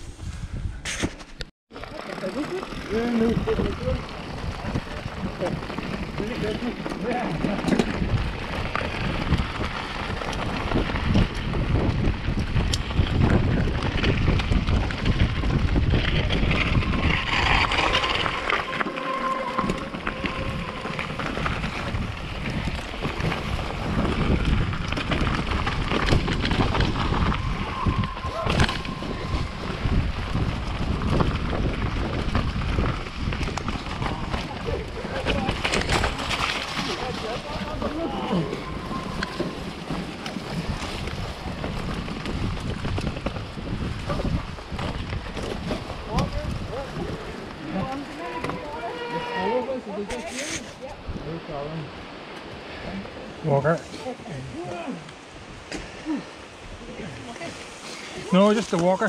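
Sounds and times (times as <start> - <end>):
wind buffeting microphone: 0.0 - 1.5, 2.4 - 59.0
bike tyre rumble and rattle: 0.0 - 59.0.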